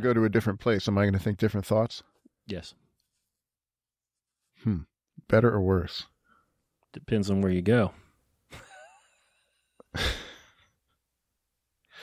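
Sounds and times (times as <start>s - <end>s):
man laughing softly: 8.5s - 10.6s.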